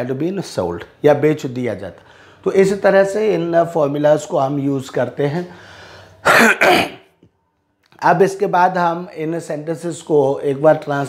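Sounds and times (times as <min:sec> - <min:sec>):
man clearing his throat: 0:06.2 - 0:07.1.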